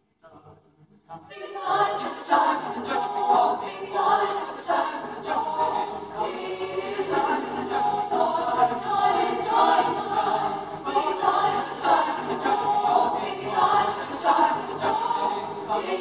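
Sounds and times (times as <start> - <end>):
mixed choir singing unaccompanied: 1.2 - 16.0.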